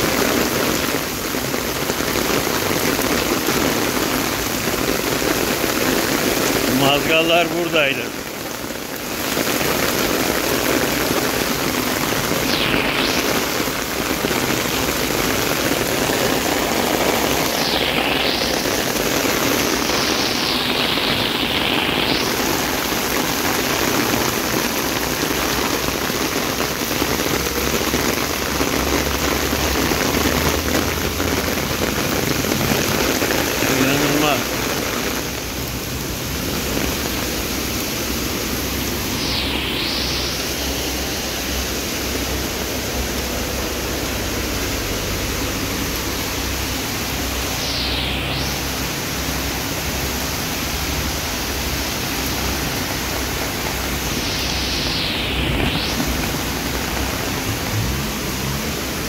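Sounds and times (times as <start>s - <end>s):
heavy rain on flooded street: 0.0s - 59.0s.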